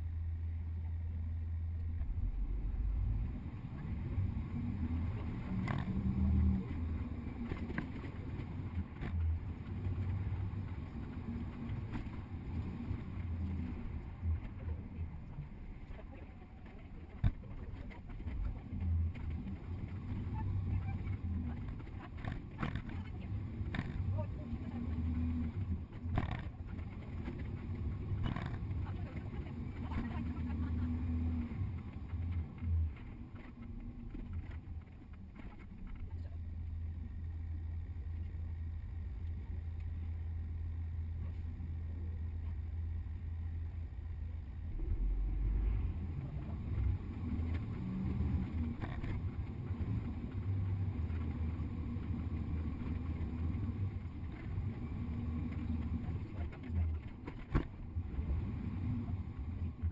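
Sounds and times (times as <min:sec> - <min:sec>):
bus engine drone: 0:00.0 - 0:59.9
road noise: 0:00.0 - 0:59.9.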